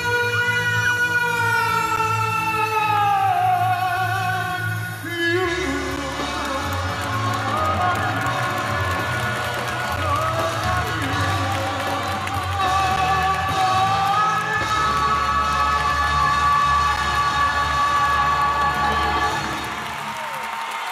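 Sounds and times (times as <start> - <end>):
live band playing ballad: 0.0 - 19.9
audience cheering: 6.6 - 20.9.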